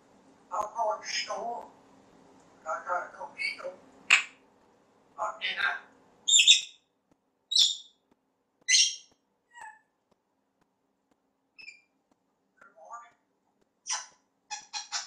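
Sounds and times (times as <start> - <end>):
parrot mumbling speech-like: 5.2 - 5.9
faint parrot chirps: 5.4 - 6.9, 7.5 - 8.0, 8.6 - 10.0, 11.6 - 12.0, 13.9 - 15.0.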